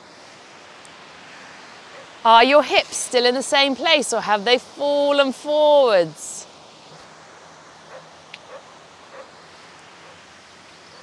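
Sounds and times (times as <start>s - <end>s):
steady even hiss: 0.0s - 11.0s.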